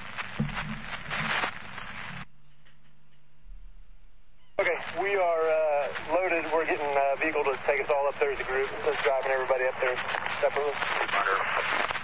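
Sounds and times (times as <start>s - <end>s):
radio channel hiss: 0.0s - 2.8s, 4.5s - 12.0s
faint low hum: 0.0s - 11.6s.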